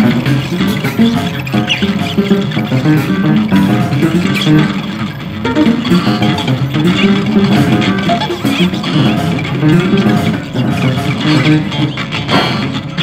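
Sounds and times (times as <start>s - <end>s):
experimental guitar music: 0.0s - 13.0s.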